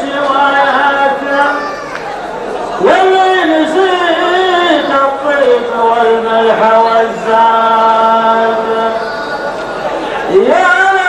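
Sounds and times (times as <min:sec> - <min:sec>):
man singing unaccompanied: 0:00.0 - 0:01.9, 0:02.8 - 0:09.4, 0:10.2 - 0:11.0.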